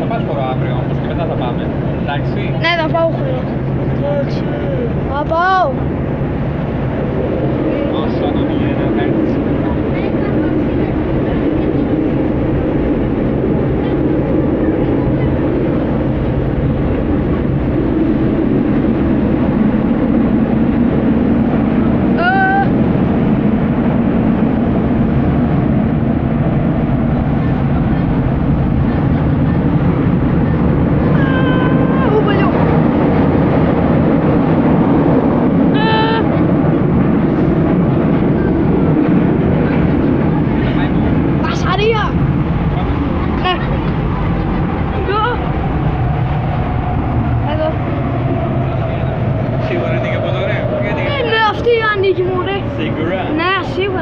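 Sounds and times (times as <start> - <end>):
metro train rumbling in tunnel: 0.0 - 54.0.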